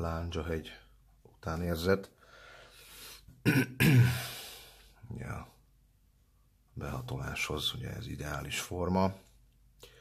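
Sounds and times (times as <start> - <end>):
man clearing his throat: 3.4 - 4.4.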